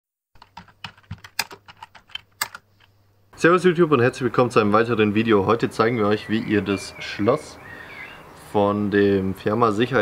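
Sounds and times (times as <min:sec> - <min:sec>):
keyboard key clicks: 0:00.4 - 0:02.6.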